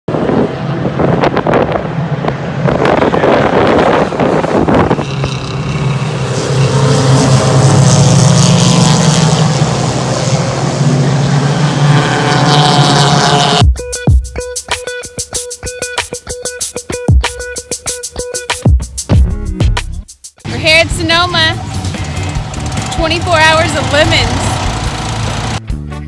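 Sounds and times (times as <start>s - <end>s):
wind gusting on microphone: 0.1s - 12.7s
race car engines running: 0.1s - 13.6s, 20.5s - 25.6s
music: 13.6s - 24.9s, 25.5s - 26.0s.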